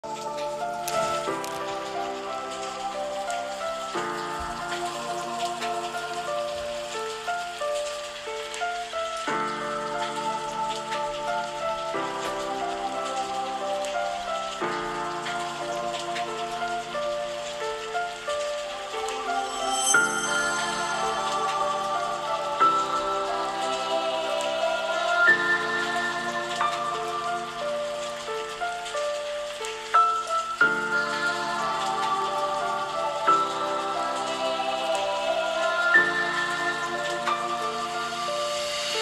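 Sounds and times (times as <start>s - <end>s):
fine rain-like patter: 0.0s - 39.0s
slow music of sustained chords: 0.0s - 39.0s.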